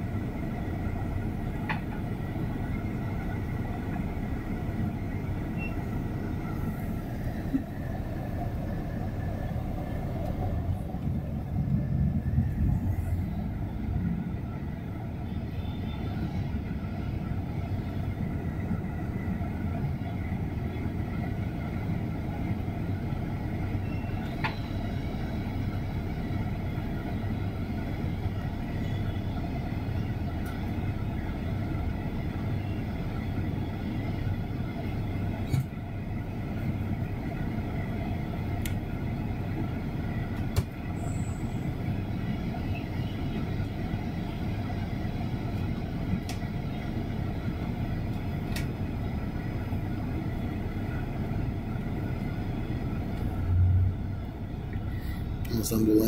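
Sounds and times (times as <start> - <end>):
bus diesel engine drone: 0.0 - 56.0
road noise: 0.0 - 56.0
low rumble: 3.4 - 23.2.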